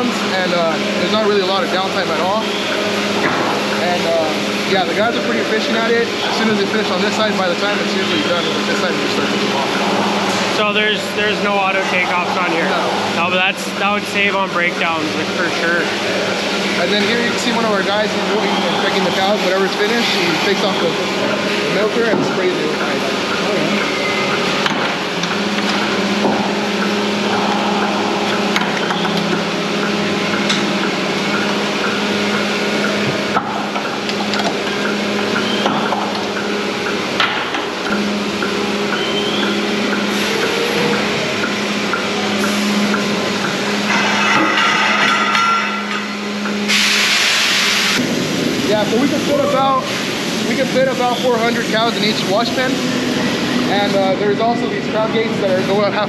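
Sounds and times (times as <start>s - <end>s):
milking machinery humming: 0.0s - 56.0s
loud hiss: 46.7s - 52.1s.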